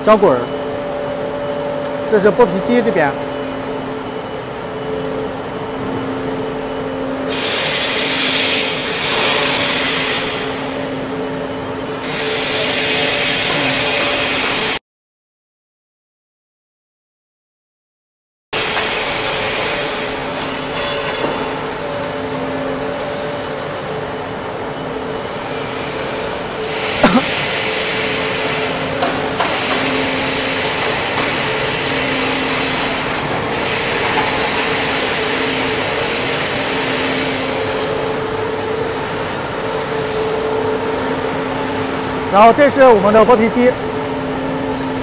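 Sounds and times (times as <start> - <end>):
machinery hum and hiss: 0.0 - 14.8, 18.6 - 45.0.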